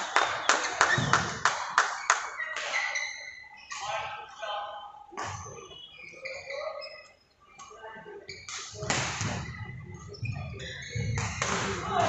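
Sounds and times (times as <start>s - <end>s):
rhythmic clapping: 0.0s - 2.7s
shoe squeaking on court floor: 0.7s - 12.0s.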